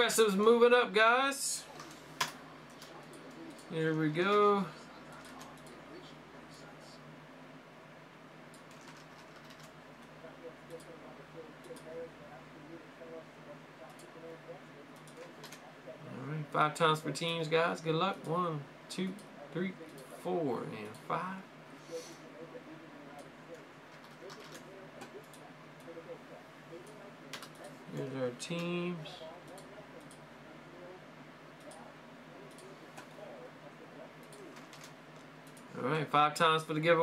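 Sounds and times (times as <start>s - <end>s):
low room hum: 0.0s - 37.0s
computer keyboard and mouse clicks: 8.5s - 9.8s.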